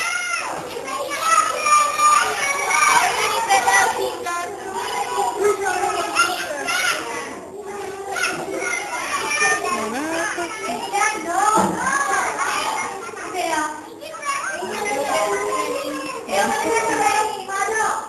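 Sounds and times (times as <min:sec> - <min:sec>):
children chattering: 0:00.0 - 0:18.0.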